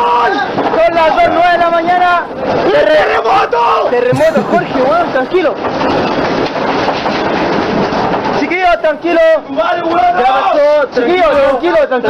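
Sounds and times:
earthquake rumbling and rattling: 4.0 - 11.4.

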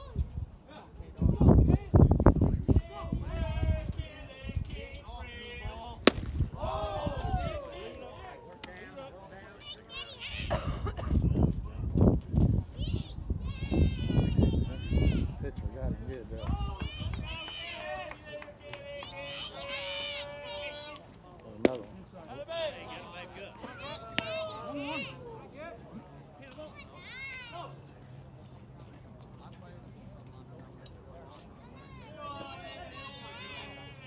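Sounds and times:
sharp thumps or claps: 6.1 - 6.5
spectators calling out and chattering: 12.6 - 34.0.

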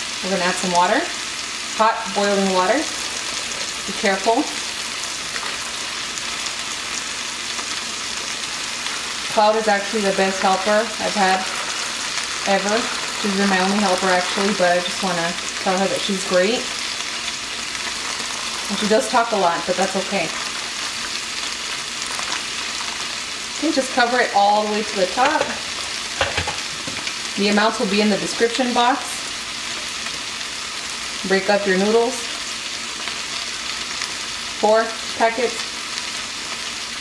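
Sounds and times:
chicken sizzling in a pan: 0.0 - 37.0.

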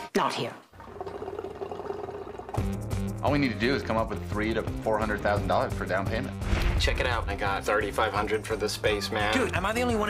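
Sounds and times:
hookah water bubbling: 0.7 - 3.2.

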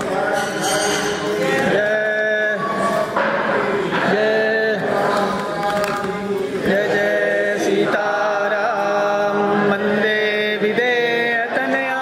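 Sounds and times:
chant-like devotional melody: 0.0 - 12.0.

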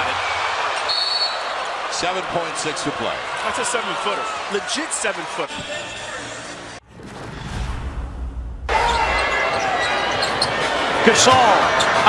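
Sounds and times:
arena crowd noise: 0.0 - 6.8, 8.7 - 12.0
low rumbling transition effect: 6.8 - 8.7.

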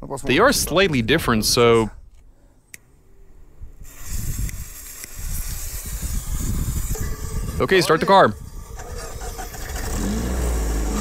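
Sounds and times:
smoke grenade hissing: 3.8 - 11.0.

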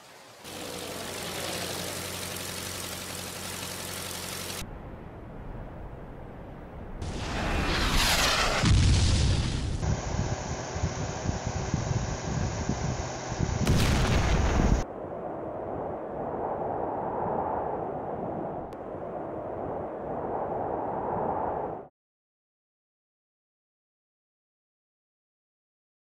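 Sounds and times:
explosion booms: 7.0 - 9.8, 13.6 - 14.8
steady rumbling: 7.0 - 16.3.

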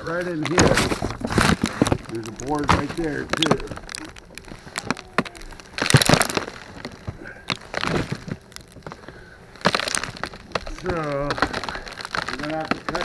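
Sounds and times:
insulation crackling and rustling: 0.0 - 13.0.

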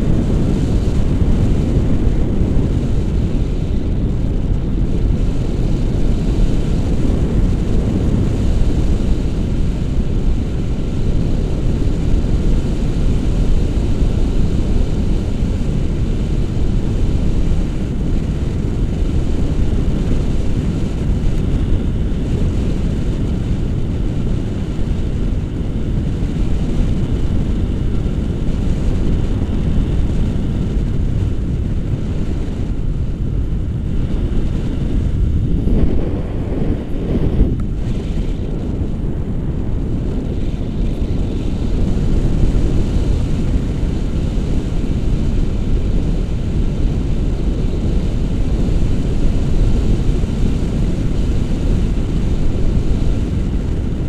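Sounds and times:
wind noise on microphone: 0.0 - 54.0.

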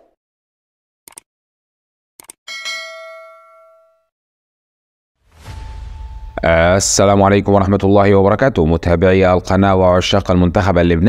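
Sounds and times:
notification bell ding: 2.5 - 4.1.

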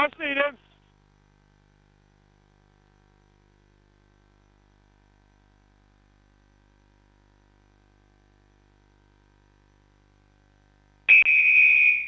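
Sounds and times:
referee's whistle long blast: 11.1 - 12.0.

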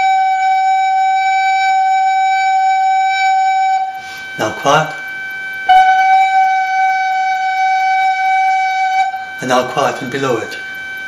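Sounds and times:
electronic reference tone: 0.0 - 11.0
recorder holding a loud note: 0.0 - 11.0.

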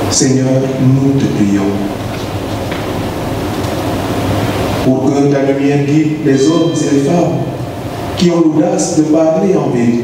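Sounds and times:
steady background hiss: 0.0 - 10.0
man speaking: 0.1 - 1.9, 4.8 - 7.6, 8.2 - 10.0.

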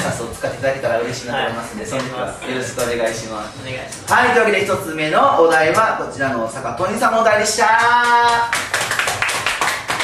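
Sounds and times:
people clapping: 7.6 - 10.0.

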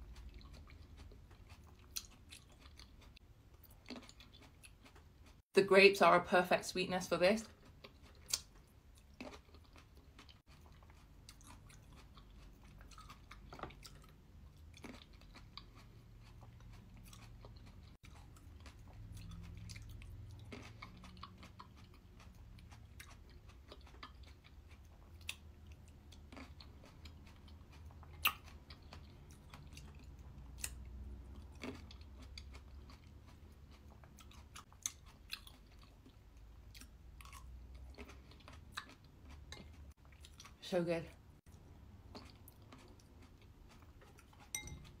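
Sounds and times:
person chewing: 0.0 - 5.5, 7.5 - 40.6, 41.4 - 45.0.

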